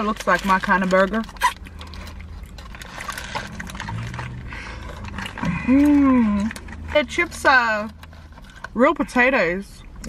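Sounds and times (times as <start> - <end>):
paper wrappers crinkling: 0.0 - 8.8
chewing: 1.3 - 7.0, 7.9 - 8.8.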